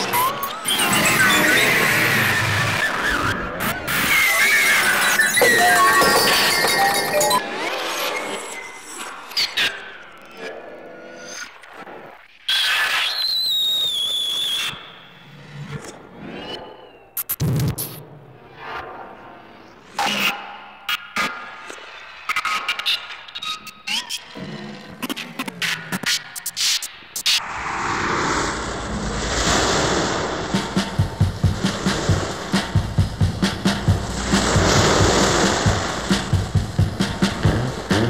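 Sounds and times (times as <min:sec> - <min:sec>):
wash of noise: 0:27.4 - 0:38.0
fast drum beat: 0:30.5 - 0:38.0.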